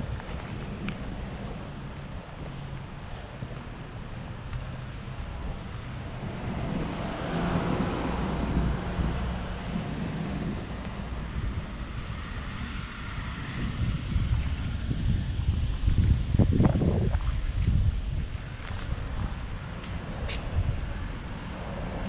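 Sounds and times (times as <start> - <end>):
low street rumble: 0.0 - 22.0
wind buffeting microphone: 0.0 - 22.0.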